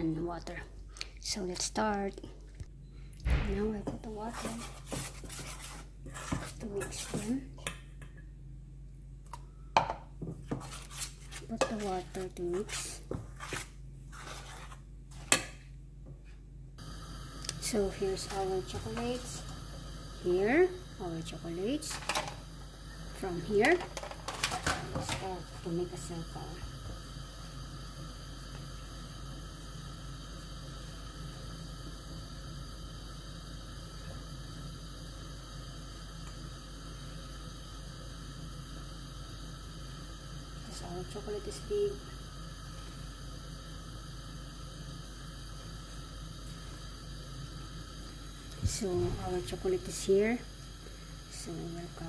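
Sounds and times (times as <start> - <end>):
steady background hum and hiss: 0.0 - 52.0
spoon scraping in a metal bowl: 4.3 - 7.3.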